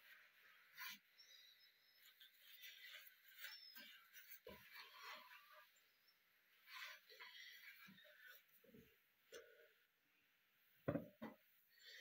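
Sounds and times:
small rustles: 0:00.0 - 0:09.9
faint knocks: 0:10.8 - 0:11.4.

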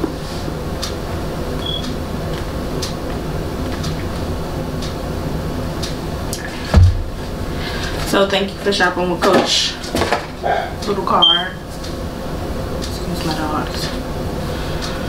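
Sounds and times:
low background hum: 0:00.0 - 0:15.0
dull thump: 0:06.7 - 0:07.2.

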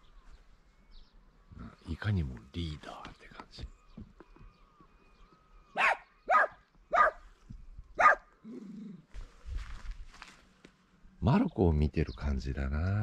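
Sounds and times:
dog barking: 0:05.8 - 0:07.2, 0:08.0 - 0:08.3.

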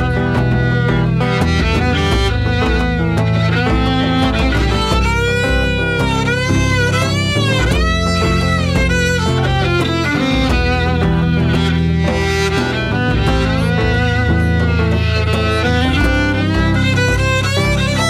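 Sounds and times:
djembe drumming: 0:00.0 - 0:18.0
strummed guitar: 0:00.0 - 0:18.0
violin melody with vibrato: 0:00.0 - 0:18.0.

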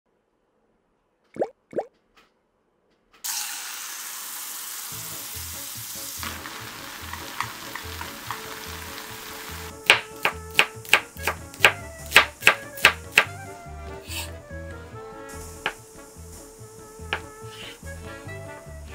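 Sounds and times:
sauce sizzling and bubbling: 0:03.3 - 0:13.1, 0:14.8 - 0:18.9
background music with steady beat: 0:05.0 - 0:18.9
knife chopping on cutting board: 0:09.8 - 0:13.4, 0:17.1 - 0:17.7.

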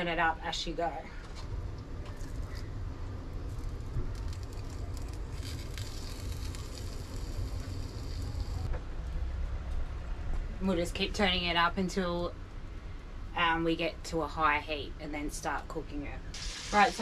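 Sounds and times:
gas burner hissing: 0:03.6 - 0:08.7, 0:16.3 - 0:17.0.

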